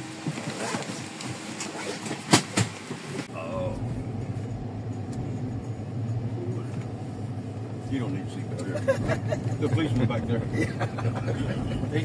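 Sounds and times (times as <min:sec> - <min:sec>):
turboprop cabin hum: 0:00.0 - 0:12.0.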